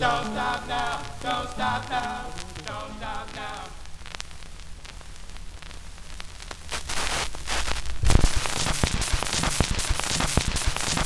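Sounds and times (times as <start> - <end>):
record surface hiss: 0.0 - 11.0
vinyl crackles and clicks: 0.0 - 11.0.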